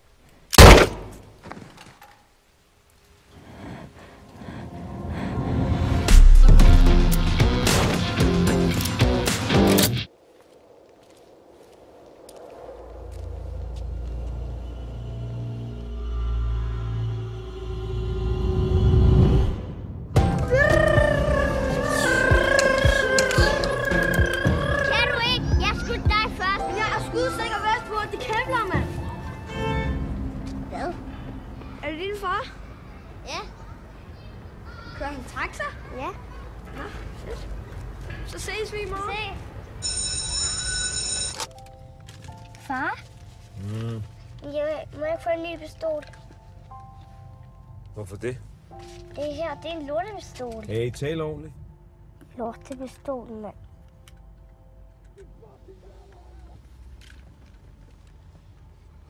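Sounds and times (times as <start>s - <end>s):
film score music: 3.9s - 10.1s, 12.4s - 32.6s, 41.3s - 57.8s
children shouting: 20.4s - 28.5s.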